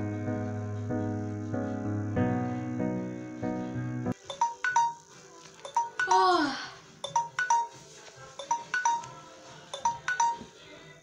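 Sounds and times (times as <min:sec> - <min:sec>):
chiming ringtone melody: 0:04.2 - 0:07.8, 0:08.4 - 0:10.6.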